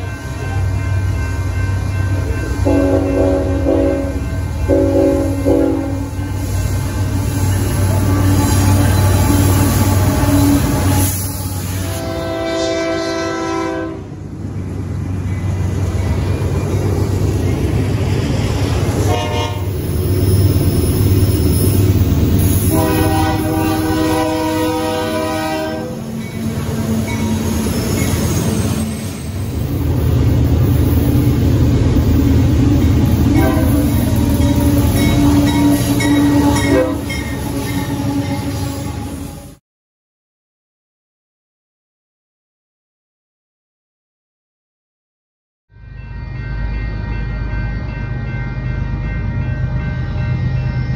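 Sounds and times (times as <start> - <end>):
diesel locomotives passing: 0.0 - 39.6, 45.7 - 50.9
multi-note train horn: 2.6 - 6.2, 7.8 - 14.2, 19.0 - 19.8, 22.6 - 26.1, 33.3 - 39.6.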